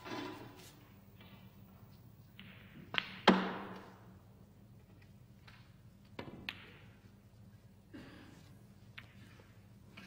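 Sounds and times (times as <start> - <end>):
snooker balls colliding: 0.0 - 1.6, 2.2 - 4.2, 5.4 - 7.2
cue striking ball: 2.4 - 4.0, 5.6 - 7.0.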